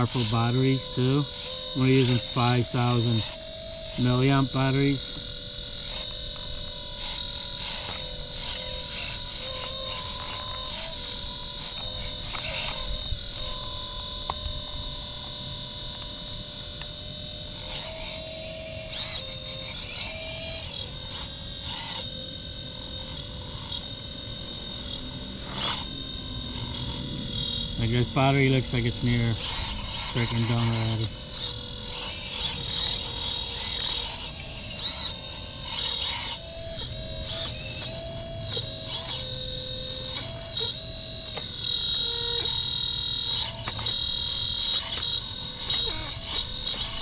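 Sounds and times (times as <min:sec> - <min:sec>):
hydraulic pump whining: 0:00.0 - 0:47.0.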